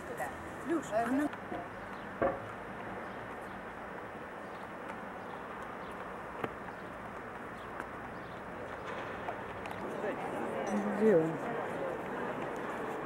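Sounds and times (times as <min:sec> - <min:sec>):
city background noise: 0:00.0 - 0:13.0.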